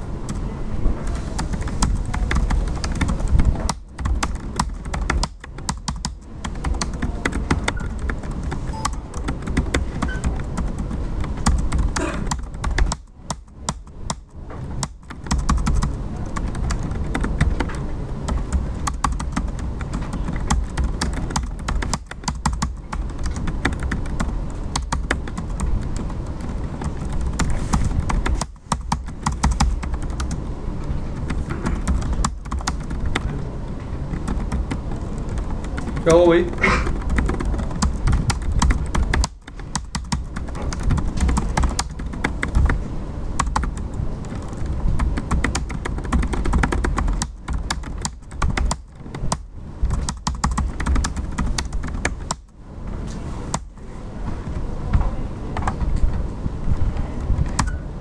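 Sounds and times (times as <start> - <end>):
fast typing on a keyboard: 1.1 - 52.6, 53.5 - 53.8, 57.2 - 57.8.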